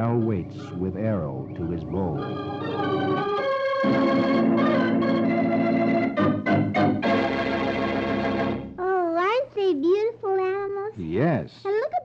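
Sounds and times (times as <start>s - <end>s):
organ music held chords: 0.0s - 8.8s.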